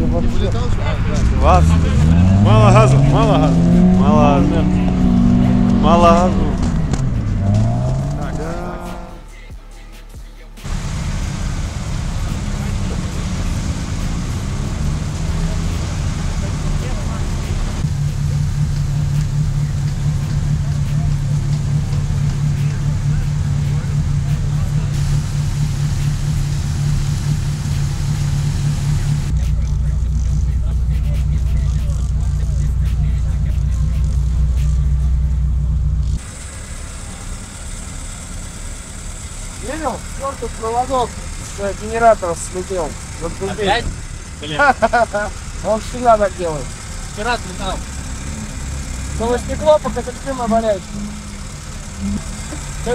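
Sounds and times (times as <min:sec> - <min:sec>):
car engine running: 0:00.0 - 0:09.4, 0:10.6 - 0:52.9.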